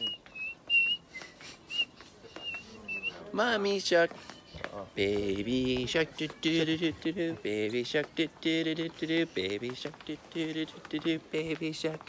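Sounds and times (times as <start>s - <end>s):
person whistling short high notes: 0.0s - 3.3s.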